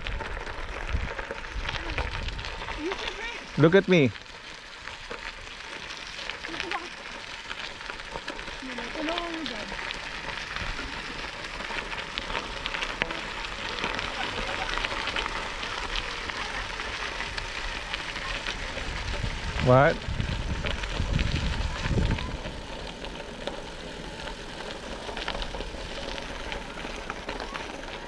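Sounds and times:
bicycle tyres crackling on gravel: 0.0 - 28.0
faint voices: 8.5 - 20.1, 20.7 - 25.4, 26.0 - 28.0.

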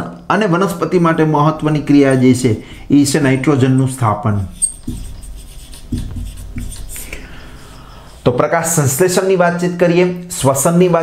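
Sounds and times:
marker writing on whiteboard: 0.9 - 9.7.

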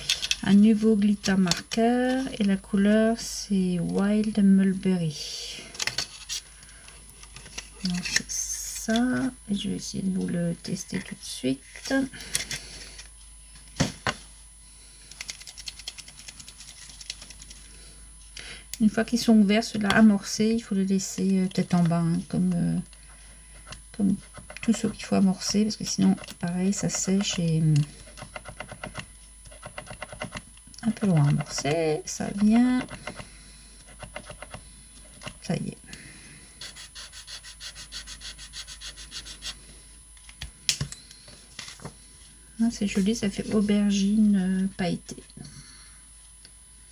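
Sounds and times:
marker rapid small clicks: 15.2 - 17.5.

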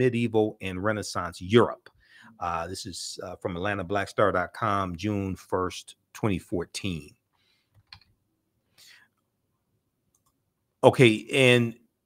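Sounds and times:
man's voice: 0.0 - 1.8, 2.4 - 7.1, 10.8 - 11.8.

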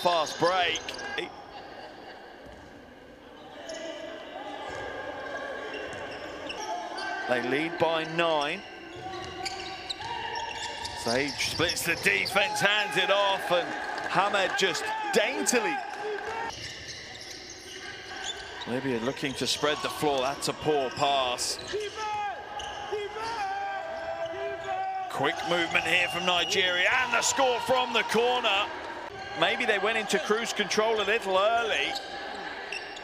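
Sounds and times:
faint voices in large hall: 0.0 - 33.0
basketball court noise: 3.6 - 33.0.

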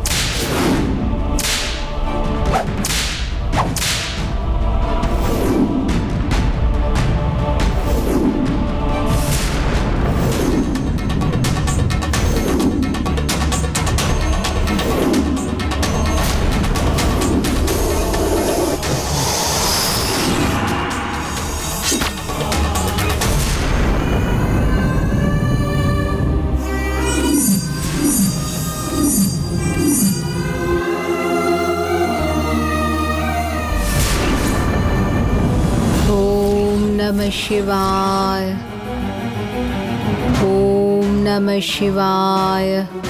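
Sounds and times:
whip cracking: 0.0 - 0.7, 1.4 - 1.8, 2.5 - 4.2
dramatic background music: 0.0 - 43.0.

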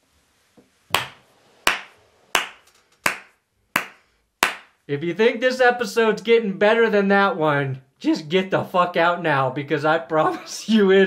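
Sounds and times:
person clapping slowly: 0.9 - 4.8.

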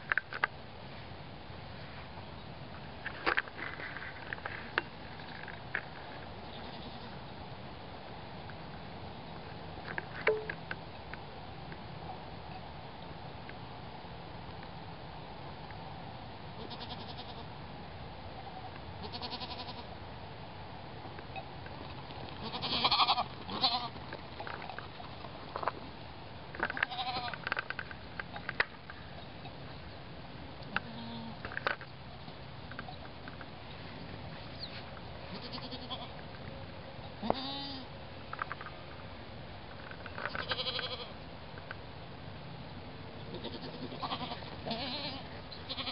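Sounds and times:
goat bleating: 6.6 - 7.2, 16.6 - 17.4, 19.0 - 19.9, 22.4 - 24.0, 26.8 - 27.3, 35.3 - 36.1, 37.2 - 37.9, 40.3 - 41.1, 43.3 - 45.9.

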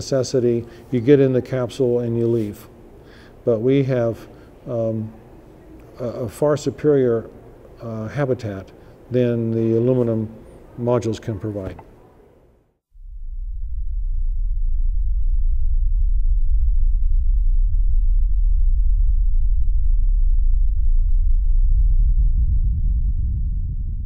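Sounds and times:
deep low rumble: 12.9 - 24.0.

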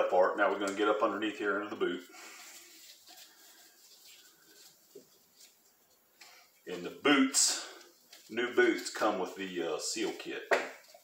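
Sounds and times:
faint handling noises: 1.8 - 11.0.

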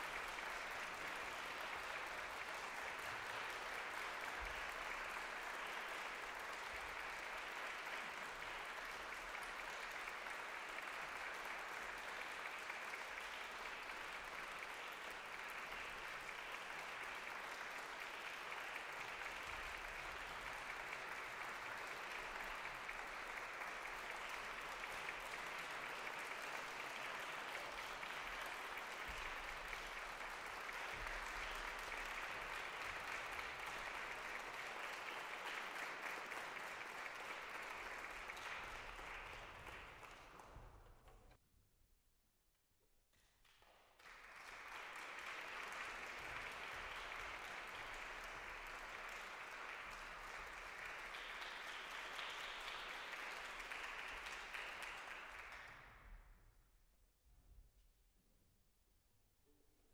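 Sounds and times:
audience applauding: 0.0 - 41.3, 43.4 - 55.9.

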